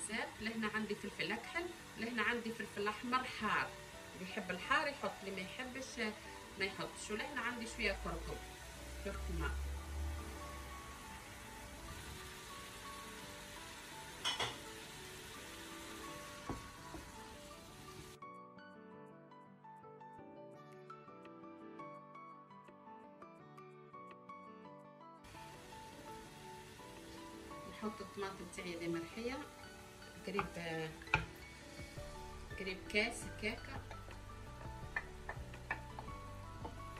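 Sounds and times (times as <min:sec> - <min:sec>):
paste sizzling in hot oil: 0:00.0 - 0:18.2, 0:25.3 - 0:36.9
soft background music: 0:00.0 - 0:36.9
cookware clink: 0:14.2 - 0:14.6
spoon knocking against pot: 0:33.8 - 0:36.8.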